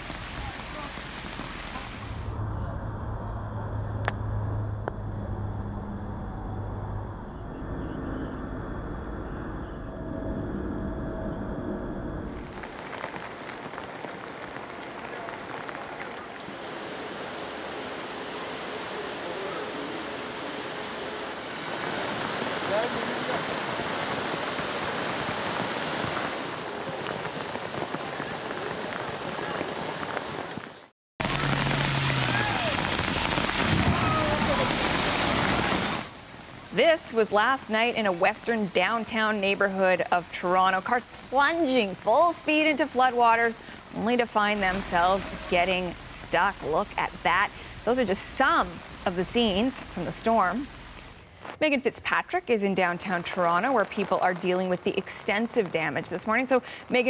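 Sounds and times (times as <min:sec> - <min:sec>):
heavy rain pouring: 0:00.0 - 0:02.5, 0:12.3 - 0:51.6, 0:52.8 - 0:57.0
low rumble: 0:02.2 - 0:12.8.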